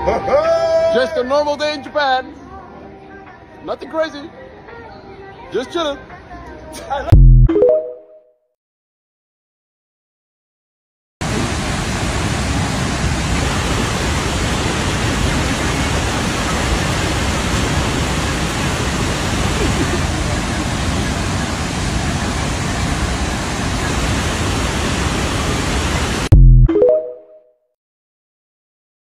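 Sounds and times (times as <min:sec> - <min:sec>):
loud electronic tone: 0:07.1 - 0:08.0, 0:26.3 - 0:27.3
waterfall roaring: 0:11.2 - 0:26.3.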